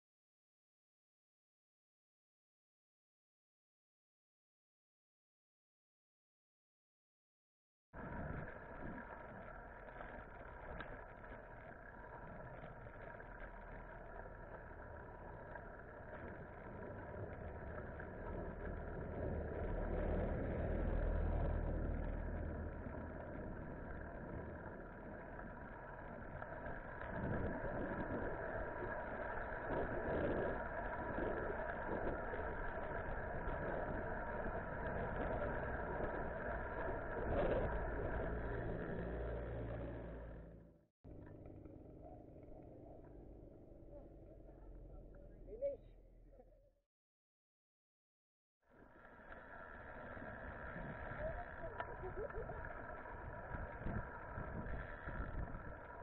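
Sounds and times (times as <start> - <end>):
road noise: 8.0 - 46.2, 48.7 - 56.0
traffic rumble: 8.0 - 46.6, 48.8 - 56.0
wind noise: 17.0 - 39.1, 49.7 - 56.0.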